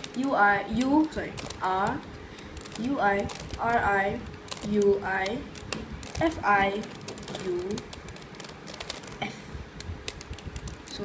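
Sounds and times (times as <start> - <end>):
puzzle cube clicking: 0.0 - 11.0.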